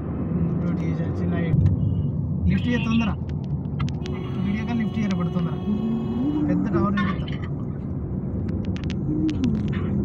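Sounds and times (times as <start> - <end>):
car cabin road and engine noise: 0.0 - 10.0.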